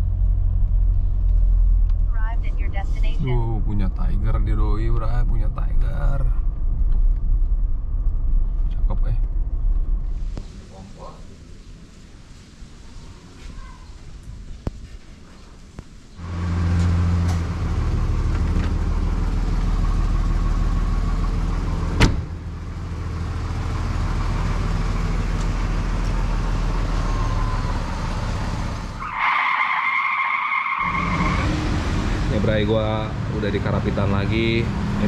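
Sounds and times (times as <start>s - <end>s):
car engine idling: 16.2s - 29.2s.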